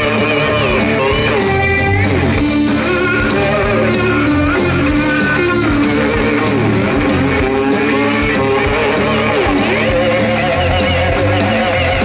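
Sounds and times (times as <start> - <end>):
bass and drums: 0.0 - 12.0
electric guitar solo: 0.0 - 12.0.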